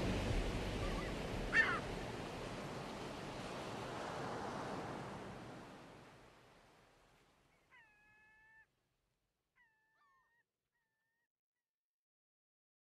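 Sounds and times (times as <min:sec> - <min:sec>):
faint drawn-out animal calls: 0:00.8 - 0:01.8, 0:07.5 - 0:08.7.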